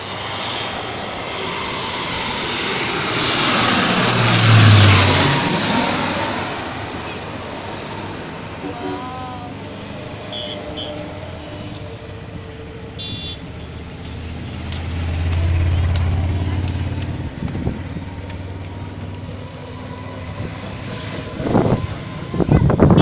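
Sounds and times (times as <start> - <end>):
voices: 8.6 - 9.6
short high beep: 13.0 - 13.4.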